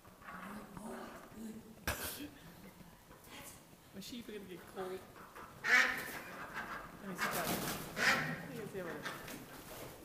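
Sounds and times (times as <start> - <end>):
ducks quacking: 5.4 - 9.3.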